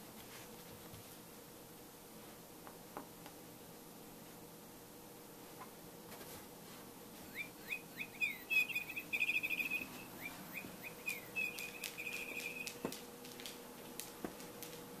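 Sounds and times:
songbird chirping and trilling: 7.3s - 12.9s.

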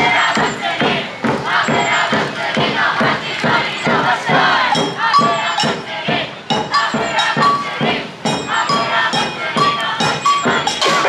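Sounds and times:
samba drums playing: 0.0s - 11.0s.

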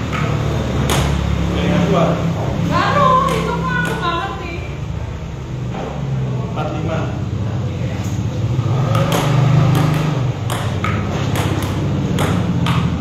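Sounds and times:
table tennis ball clicking: 8.9s - 13.0s.

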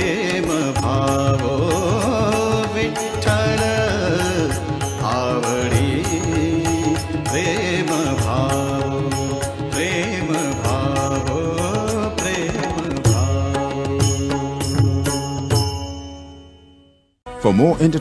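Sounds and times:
devotional singing: 0.0s - 14.8s
drums and ticking percussion: 0.1s - 16.0s.

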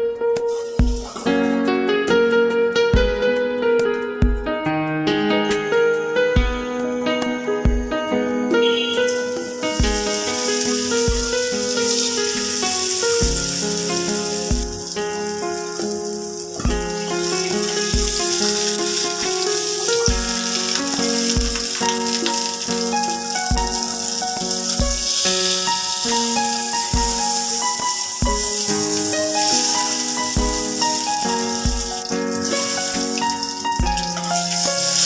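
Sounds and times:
background music with low beat: 0.1s - 15.5s, 16.6s - 19.4s, 20.0s - 24.0s, 26.9s - 29.0s, 30.3s - 35.0s
fish frying in hot oil: 8.7s - 35.0s.

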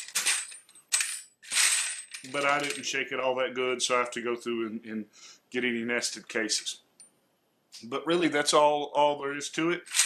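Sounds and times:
brass cases clattering in plastic tray: 0.0s - 2.8s.

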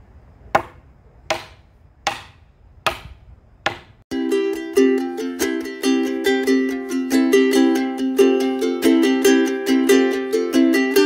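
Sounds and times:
hammer striking post: 0.5s - 4.0s.

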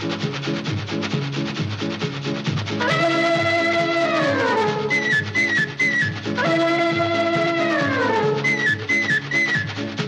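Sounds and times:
stepping bass line: 0.0s - 8.4s
fast even percussion rhythm: 0.0s - 10.0s
film orchestra instrumental: 6.4s - 8.4s.

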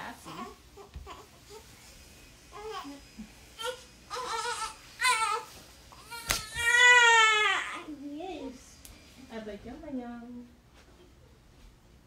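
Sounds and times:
baby crying: 3.6s - 7.9s.

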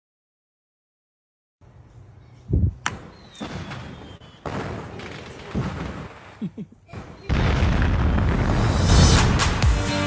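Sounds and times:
sharp crack: 7.0s - 9.7s.

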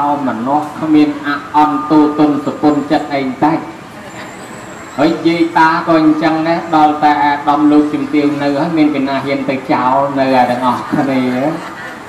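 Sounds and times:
man preaching into a microphone: 0.0s - 3.8s, 5.0s - 11.7s
low background noise: 0.0s - 12.0s.

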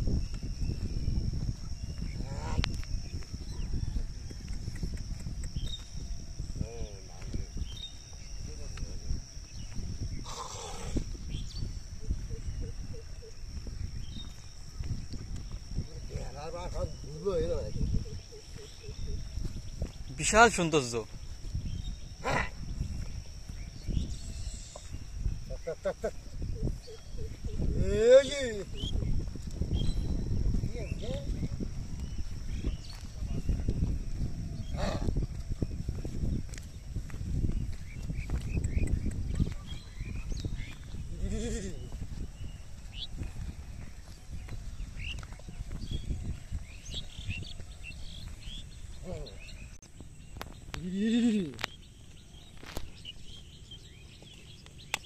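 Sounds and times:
small birds chirping: 0.0s - 55.0s.

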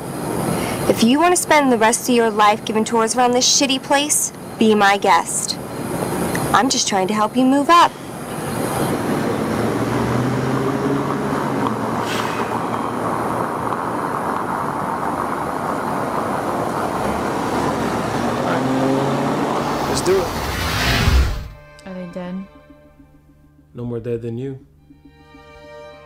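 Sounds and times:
cars running on a street: 0.0s - 21.6s
faint engine hum: 0.0s - 26.0s.

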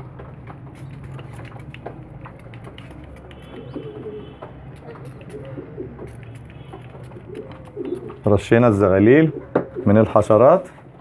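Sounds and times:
pigeons cooing: 0.7s - 10.3s.

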